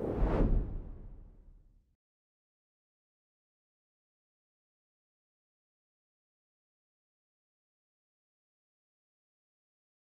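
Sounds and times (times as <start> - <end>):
whoosh: 0.0 - 1.4.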